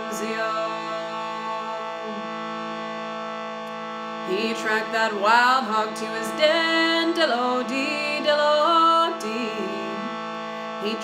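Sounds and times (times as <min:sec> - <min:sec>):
reed harmonium drone: 0:00.0 - 0:11.0.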